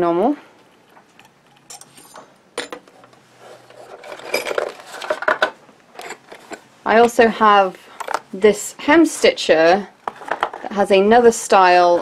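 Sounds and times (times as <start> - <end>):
rustling handling: 0.7 - 6.7
metal parts clinking: 1.2 - 3.0, 3.7 - 6.7.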